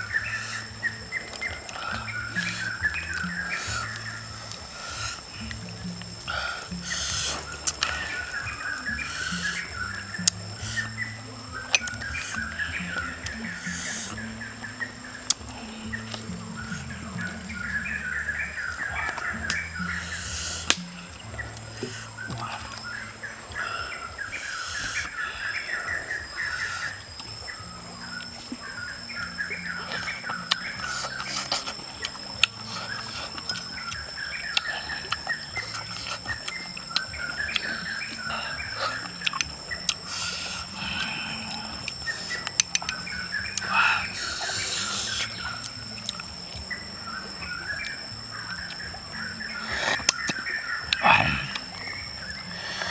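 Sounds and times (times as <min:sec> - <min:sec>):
birds chirping: 0:00.0 - 0:52.9
high-pitched insect whine: 0:00.0 - 0:52.9.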